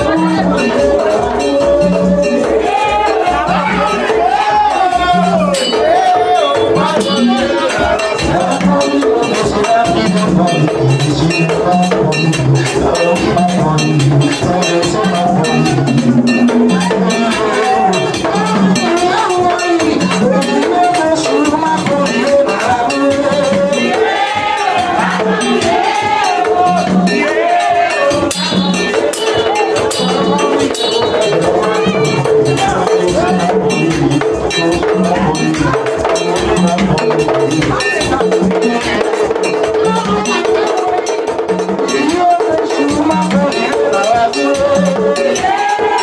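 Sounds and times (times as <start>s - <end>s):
group singing: 0.0s - 46.0s
hand drums: 0.0s - 46.0s
metal bell struck rhythmically: 0.0s - 46.0s
percussion: 0.0s - 46.0s
people singing held notes: 16.7s - 33.9s, 43.7s - 46.0s.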